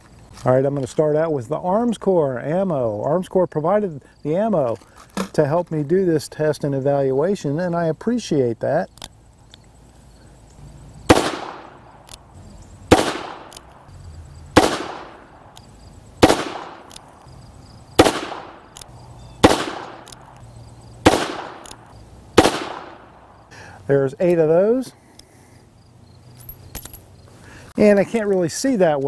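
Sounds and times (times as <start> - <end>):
revolver gunshots: 11.1 - 11.9, 12.9 - 13.7, 14.5 - 15.3, 16.2 - 16.9, 18.0 - 18.8, 19.4 - 20.3, 21.0 - 21.8, 22.4 - 23.2.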